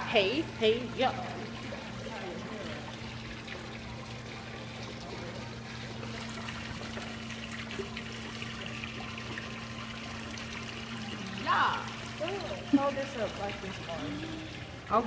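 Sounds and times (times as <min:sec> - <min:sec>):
low even hum: 0:00.0 - 0:15.0.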